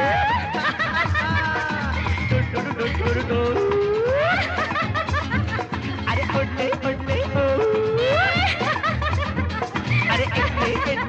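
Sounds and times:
man singing yodel-like runs: 0.0s - 4.6s, 5.8s - 8.8s, 9.9s - 11.0s
band playing film song: 0.0s - 11.0s.

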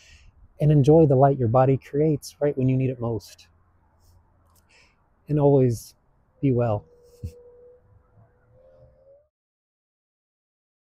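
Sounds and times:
faint steady tone: 0.0s - 9.3s.

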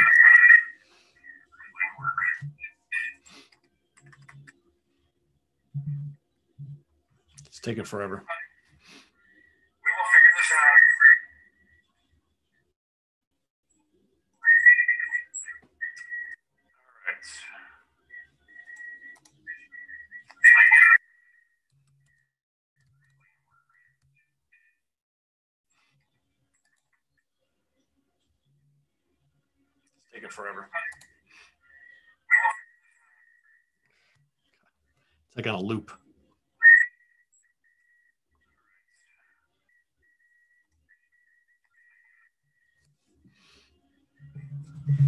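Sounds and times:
audio feedback whistling: 18.1s - 20.3s, 44.2s - 45.0s.

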